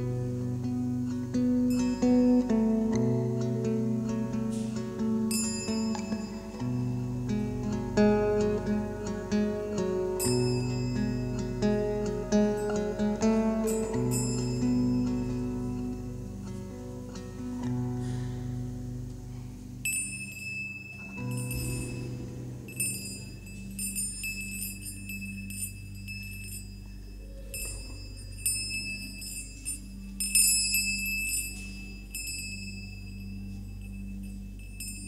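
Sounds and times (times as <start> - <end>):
low steady drone: 0.0 - 35.0
hand-held metal chimes ringing: 1.5 - 17.8, 19.3 - 35.0.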